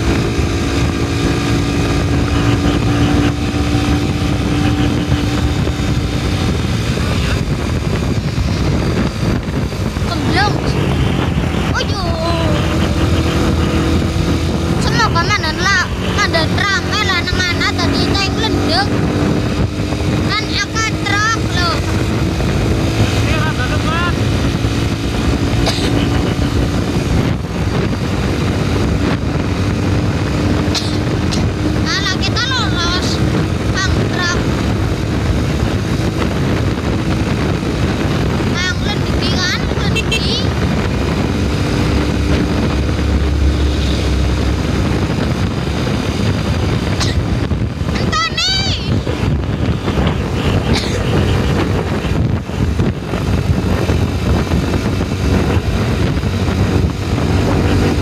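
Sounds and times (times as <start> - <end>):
road and wind noise: 0.0 - 58.0
vehicle engine running: 0.0 - 58.0.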